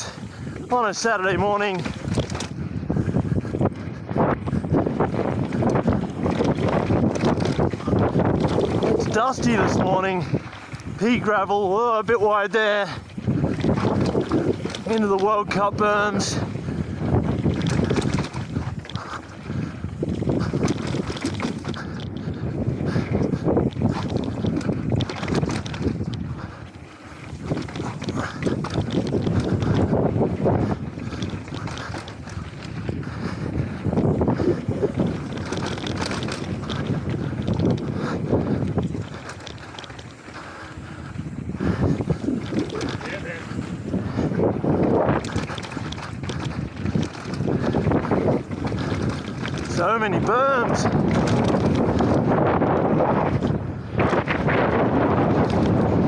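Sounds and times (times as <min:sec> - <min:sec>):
tyres rolling over dirt and rock: 0:00.0 - 0:03.6, 0:04.7 - 0:56.0
bike rattling: 0:00.0 - 0:56.0
wind buffeting microphone: 0:00.0 - 0:56.0.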